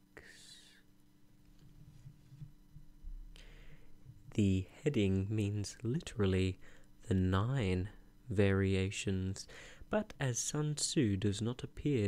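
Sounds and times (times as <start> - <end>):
faint steady low hum: 0.0 - 12.0
man breathing softly: 0.2 - 0.9, 3.3 - 4.1, 6.6 - 7.0, 9.5 - 9.9.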